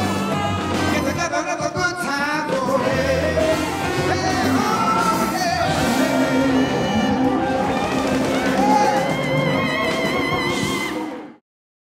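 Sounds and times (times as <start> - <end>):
rhythm and blues band with singers: 0.0 - 11.4.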